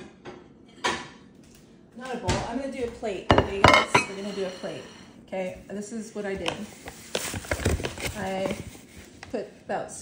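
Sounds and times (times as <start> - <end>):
kitchenware knocking: 3.3 - 4.5.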